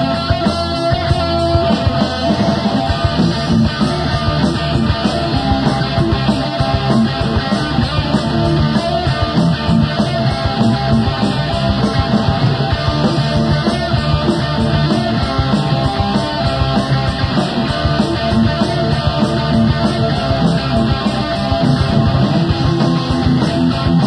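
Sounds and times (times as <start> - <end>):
live rock band playing: 0.0 - 24.0.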